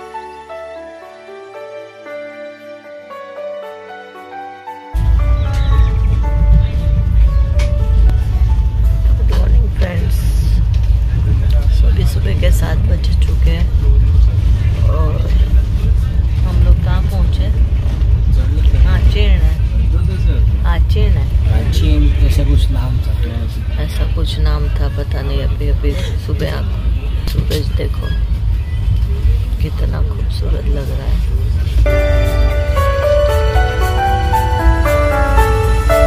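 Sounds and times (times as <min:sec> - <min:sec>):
soft music: 0:00.0 - 0:12.5, 0:31.9 - 0:36.0
moving train rumble: 0:00.0 - 0:36.0
passengers talking: 0:00.0 - 0:36.0.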